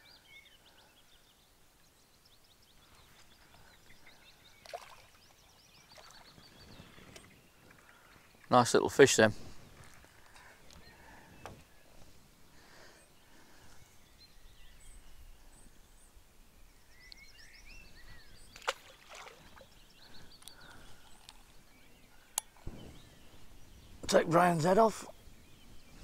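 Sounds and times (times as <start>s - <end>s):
bird chirps: 0.0s - 8.6s, 12.9s - 26.0s.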